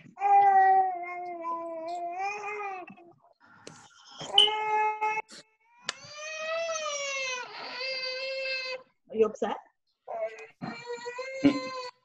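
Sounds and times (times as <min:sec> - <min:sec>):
baby crying: 0:04.3 - 0:08.8, 0:10.1 - 0:12.0.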